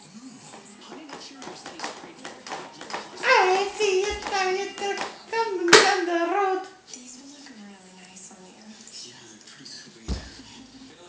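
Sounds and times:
sharp slap: 5.7s - 6.1s.

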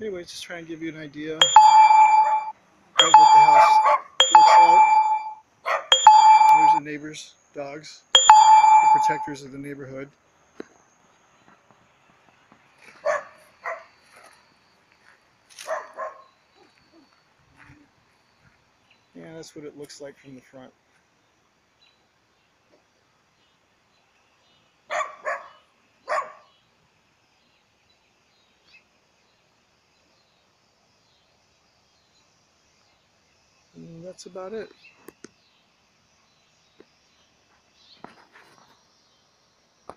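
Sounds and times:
loud flat ringing tone: 1.4s - 6.8s, 8.2s - 9.4s
dogs barking: 5.7s - 6.0s, 13.0s - 13.9s, 15.6s - 16.3s, 24.9s - 26.5s.

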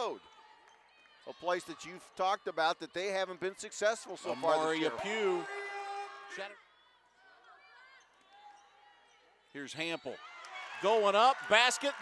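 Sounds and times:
faint arena ambience: 0.0s - 12.0s.

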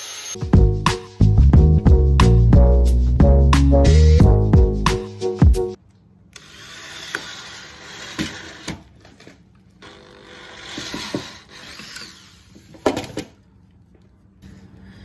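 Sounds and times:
drill driving screws: 0.0s - 0.4s, 6.4s - 8.9s, 9.8s - 12.8s
music: 0.4s - 5.8s
drill clicks: 9.8s - 12.5s.

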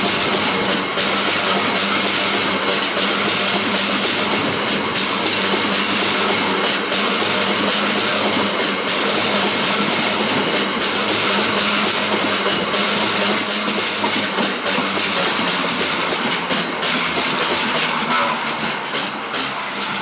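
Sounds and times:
train wheels clattering on track: 0.0s - 20.0s.

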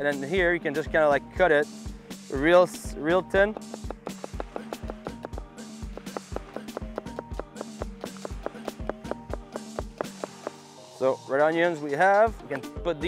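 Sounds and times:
background music: 0.0s - 13.0s
knife taps on cutting board: 3.5s - 10.6s.

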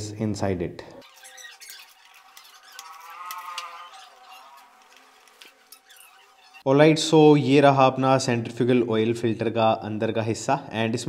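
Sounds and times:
screw squeaking: 1.0s - 6.7s.

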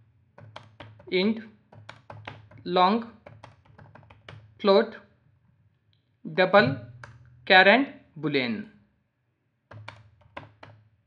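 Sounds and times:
computer keyboard typing: 0.4s - 1.1s, 1.7s - 4.5s, 9.7s - 10.8s.

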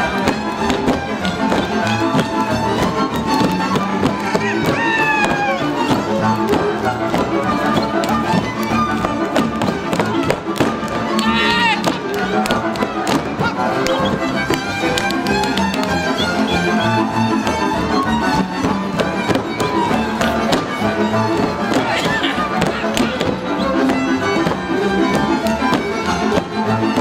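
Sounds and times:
boots stamping and slapping: 0.0s - 15.9s, 18.4s - 27.0s
folk dance music string band: 0.0s - 27.0s.

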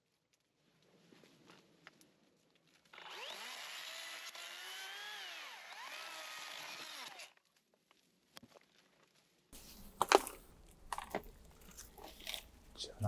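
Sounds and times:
electric chainsaw motor whine: 2.9s - 7.4s.

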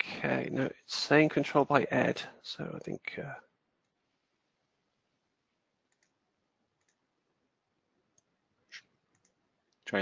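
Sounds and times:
computer mouse clicks: 5.9s - 6.2s, 6.8s - 7.1s, 8.1s - 9.8s.

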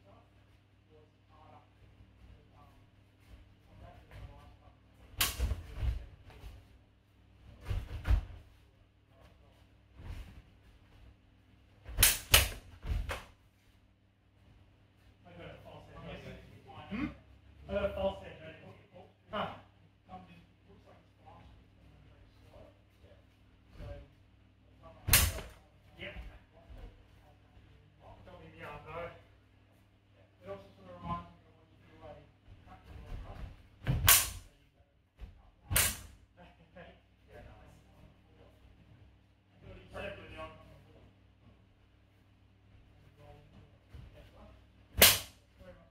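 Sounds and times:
practice swords clashing: 5.1s - 6.0s, 11.9s - 13.3s, 25.0s - 25.6s, 33.8s - 34.5s, 35.7s - 36.2s, 45.0s - 45.4s.

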